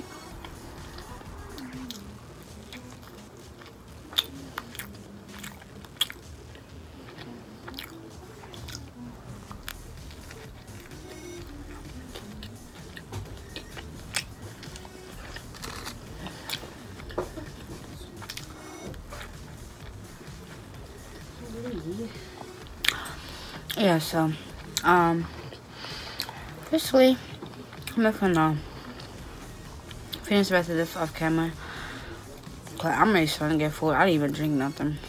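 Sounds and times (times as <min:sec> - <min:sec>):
person chewing pizza: 0:00.1 - 0:30.2.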